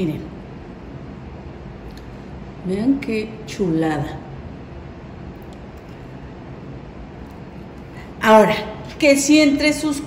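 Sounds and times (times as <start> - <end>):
steady hiss with low rumble: 0.0 - 10.0.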